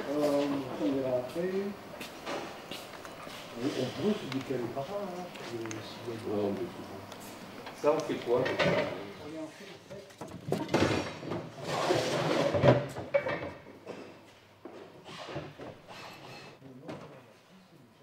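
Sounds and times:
person talking: 3.5 - 7.0.

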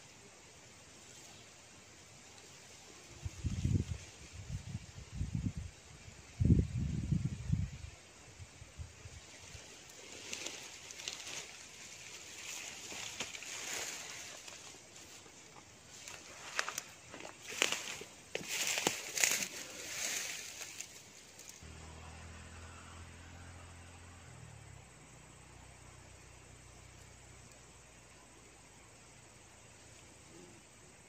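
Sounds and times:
rustling leaves and undergrowth: 0.0 - 31.0.

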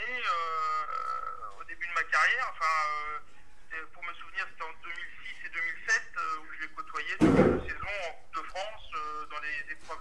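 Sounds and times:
people talking: 0.0 - 10.0
loud short thump: 7.2 - 7.8.

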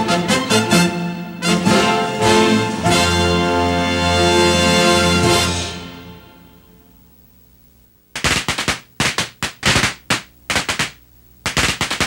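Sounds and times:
popcorn popping: 8.1 - 12.0.

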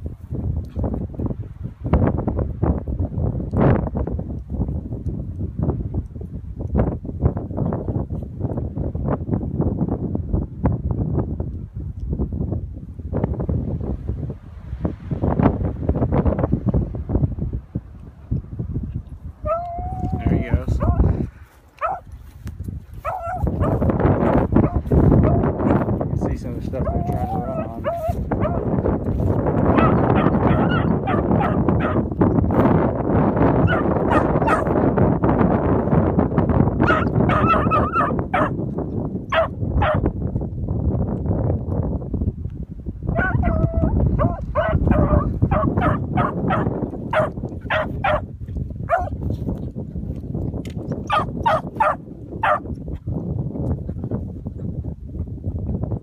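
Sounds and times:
wind noise on microphone: 0.0 - 56.0
dogs barking and baying: 19.4 - 20.2, 20.8 - 21.1, 21.8 - 22.2, 22.9 - 25.8, 26.8 - 28.9, 29.6 - 32.1, 33.6 - 34.8, 36.8 - 38.6, 39.3 - 40.0, 43.1 - 49.2, 51.0 - 52.7.

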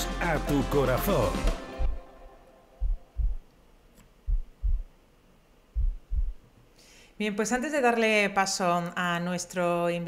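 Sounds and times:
heartbeat thumps: 1.4 - 2.0, 2.8 - 3.5, 4.2 - 5.0, 5.7 - 6.5.

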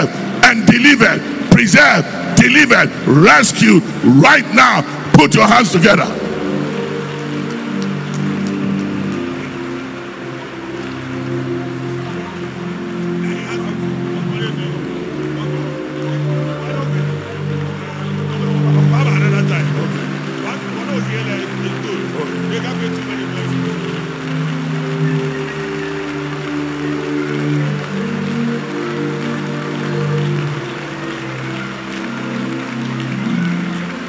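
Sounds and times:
congregation praying aloud: 0.0 - 8.8, 13.1 - 32.6
sustained keyboard chords: 0.0 - 34.0.

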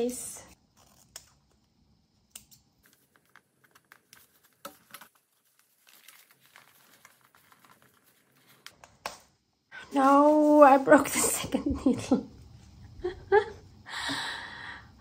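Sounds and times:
paper pages rustling: 2.8 - 9.1.

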